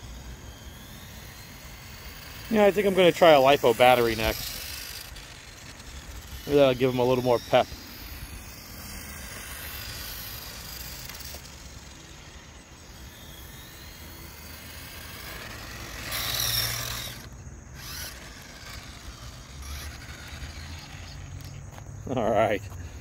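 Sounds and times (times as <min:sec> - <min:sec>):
toy car motor whirring: 0:00.0 - 0:23.0.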